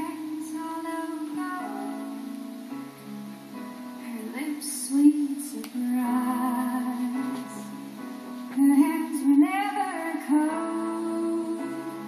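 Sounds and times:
woman singing into microphone: 0:00.0 - 0:02.3, 0:04.0 - 0:12.0
soft instrumental backing: 0:00.0 - 0:12.0.

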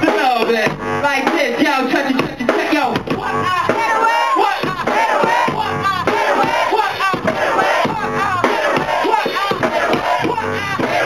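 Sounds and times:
crowd and rapper chanting: 0:00.0 - 0:11.0.

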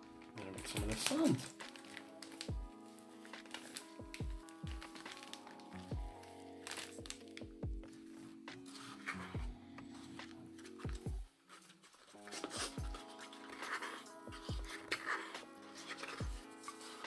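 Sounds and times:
plastic bag crinkling: 0:00.0 - 0:17.0.

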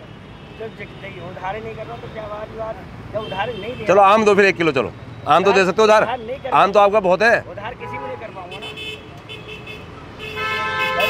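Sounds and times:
vehicle horn toots: 0:03.2 - 0:04.0, 0:07.8 - 0:11.0.

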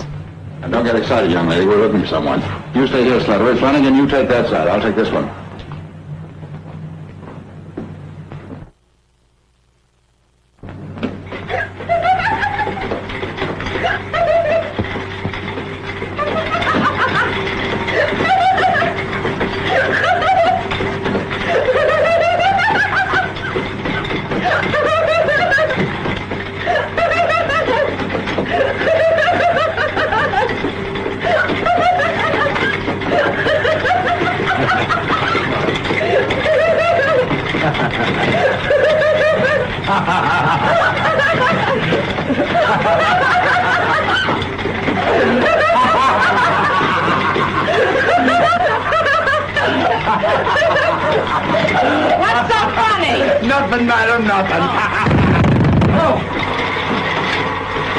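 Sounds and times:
woman laughing: 0:11.5 - 0:13.0, 0:13.7 - 0:14.9, 0:16.2 - 0:19.1, 0:19.7 - 0:20.7, 0:24.4 - 0:25.8, 0:26.6 - 0:30.6, 0:31.2 - 0:44.4, 0:45.0 - 0:53.4
man laughing: 0:31.2 - 0:44.3.

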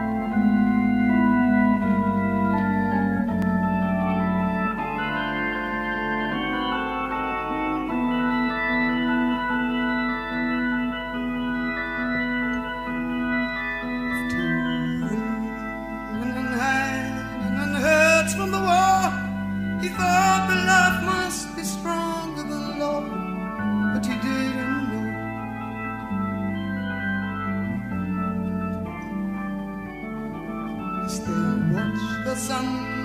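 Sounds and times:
organ playing held chords: 0:00.0 - 0:33.0.

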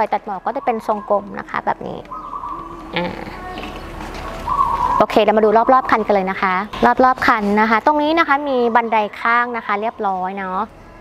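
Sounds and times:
birds calling: 0:00.0 - 0:10.7.

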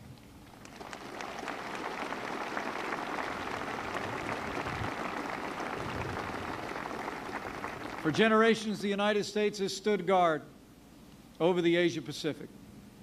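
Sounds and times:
large crowd applauding: 0:00.5 - 0:08.3.

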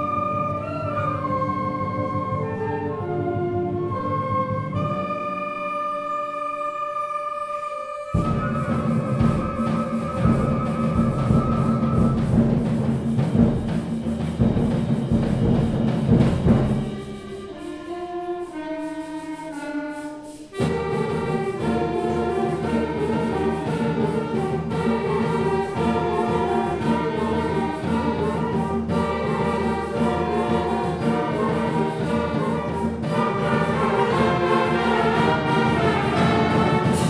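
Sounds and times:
percussion strokes: 0:00.0 - 0:37.0
concert band playing: 0:08.1 - 0:37.0.

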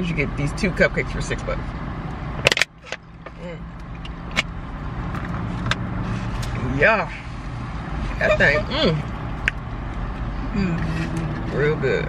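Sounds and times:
car idling from inside cabin: 0:08.1 - 0:09.0.

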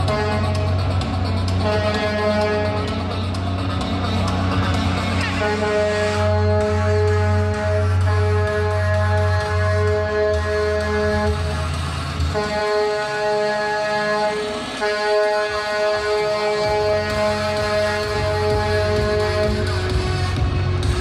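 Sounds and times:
truck air horn blasts: 0:00.0 - 0:03.4, 0:05.1 - 0:21.0
diesel engine rumble: 0:00.0 - 0:21.0
music: 0:00.0 - 0:21.0.

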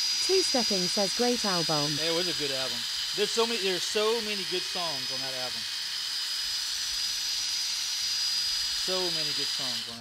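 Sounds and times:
lathe tool cutting wood: 0:00.0 - 0:10.0.

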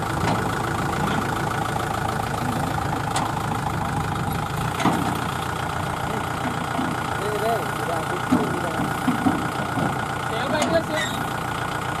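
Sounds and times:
diesel tractor engine idling: 0:00.0 - 0:12.0
people talking: 0:07.2 - 0:09.0, 0:10.3 - 0:11.2.

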